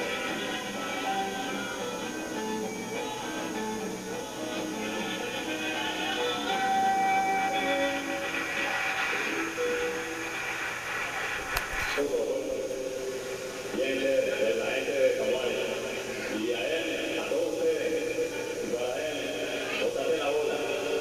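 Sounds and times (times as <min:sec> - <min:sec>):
voices singing held notes: 0:00.0 - 0:10.8, 0:12.0 - 0:21.0
sharp click: 0:11.5 - 0:12.0
man talking: 0:12.0 - 0:12.7, 0:13.8 - 0:21.0.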